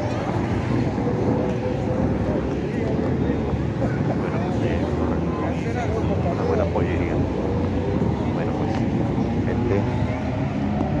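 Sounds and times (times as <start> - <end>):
street traffic rumble: 0.0 - 11.0
voices: 0.0 - 11.0.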